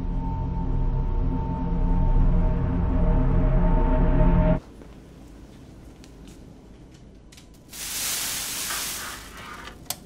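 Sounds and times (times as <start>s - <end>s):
loud spray hiss: 7.7s - 9.4s.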